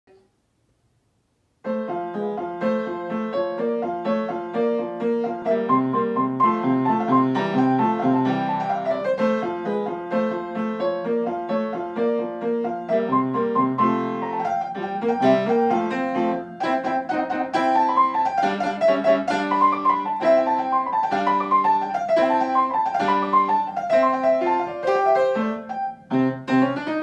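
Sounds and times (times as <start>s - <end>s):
upright piano playing: 1.6s - 27.0s.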